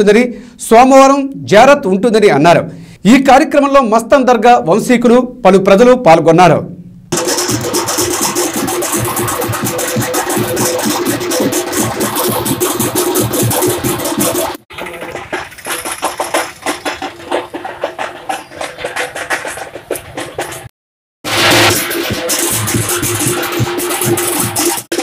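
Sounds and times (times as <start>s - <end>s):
drum band playing: 7.1s - 25.0s.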